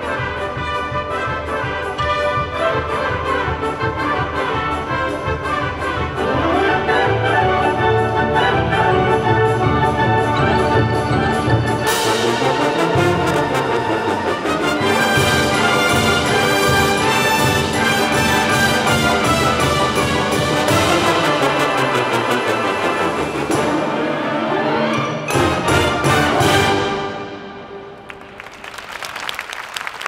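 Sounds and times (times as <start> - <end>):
concert band with brass: 0.0 - 30.0.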